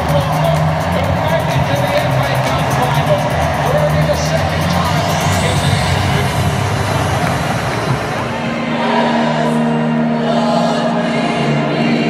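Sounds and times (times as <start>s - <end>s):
large crowd noise: 0.0s - 12.0s
music over public-address system: 0.0s - 12.0s.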